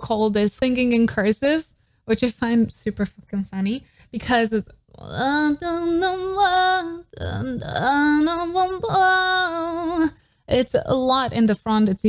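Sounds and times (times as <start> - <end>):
woman singing pop ballad: 4.9 - 11.1.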